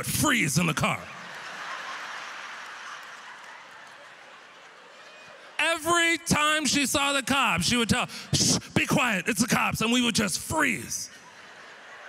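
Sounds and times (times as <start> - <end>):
audience laughing: 1.0 - 5.6, 11.1 - 12.0.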